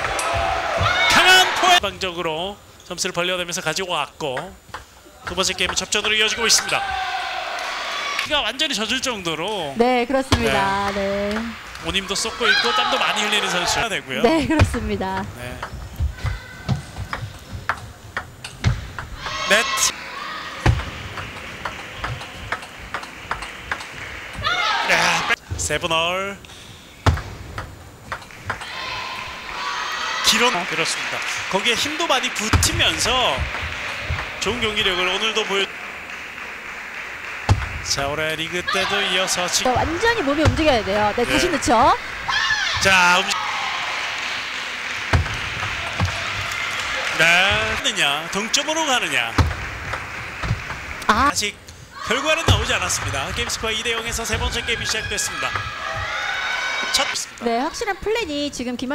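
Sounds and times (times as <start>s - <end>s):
sports hall hum: 0.0s - 58.9s
heavier thump: 14.5s - 17.8s, 39.8s - 41.2s
table tennis ball hits: 20.6s - 24.6s, 27.0s - 28.8s, 31.8s - 34.8s, 37.4s - 38.0s, 45.1s - 46.6s, 49.3s - 51.0s, 52.5s - 56.1s
table tennis ball clicking: 20.7s - 24.4s, 27.1s - 28.7s.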